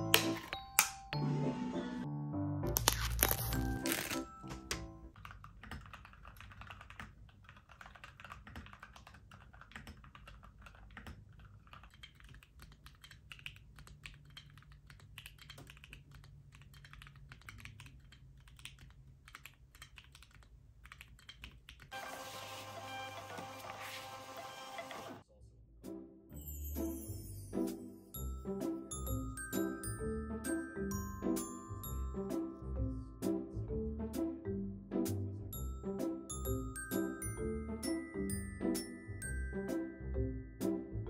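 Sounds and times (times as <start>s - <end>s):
soft background music: 0.0s - 5.1s, 25.7s - 41.0s
typing on mechanical keypad: 5.1s - 21.9s.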